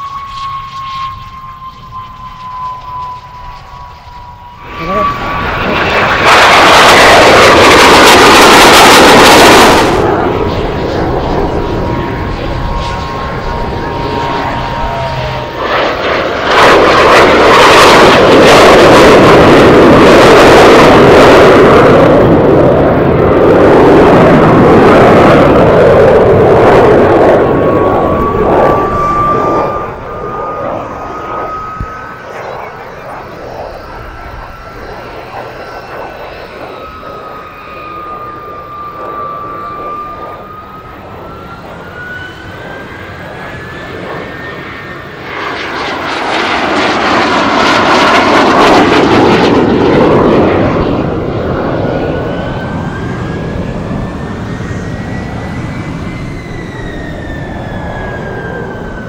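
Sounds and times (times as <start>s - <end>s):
jet aircraft engine roar: 0.0s - 59.0s.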